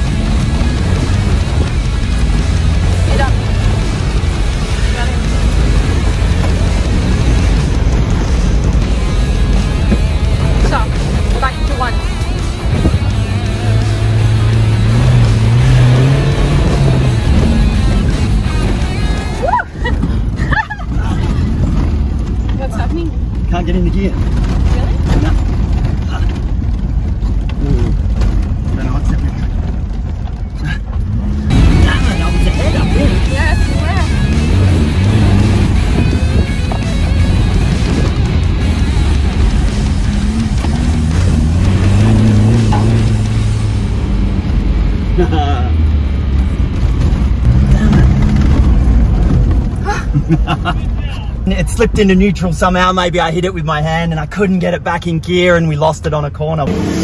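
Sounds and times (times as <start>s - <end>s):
background music: 0.0s - 21.6s, 31.3s - 46.0s
tyres on gravel: 0.0s - 55.8s
car engine running under load: 0.0s - 57.0s.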